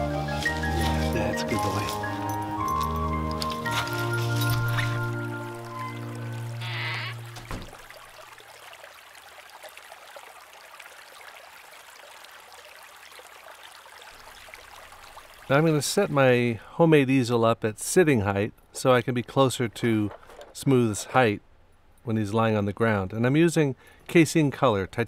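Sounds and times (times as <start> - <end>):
music with long held notes: 0.0 - 6.7
stream trickling: 0.2 - 22.1.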